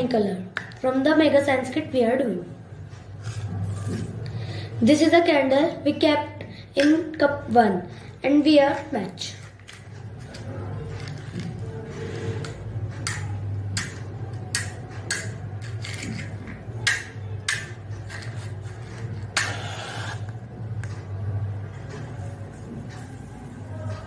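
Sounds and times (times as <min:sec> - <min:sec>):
match scraping on matchbox: 0:19.4 - 0:20.3.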